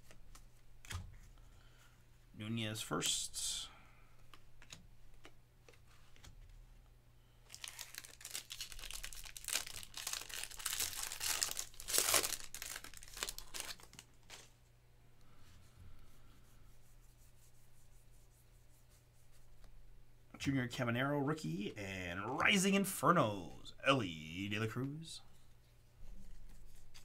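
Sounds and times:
foil wrapper tearing and crinkling: 7.5s - 14.5s
cards rustling: 7.5s - 14.6s.

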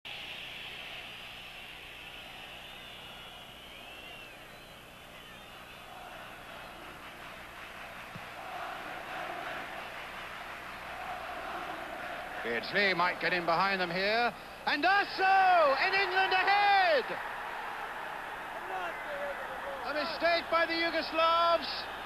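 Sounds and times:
stadium crowd noise: 0.1s - 22.0s.

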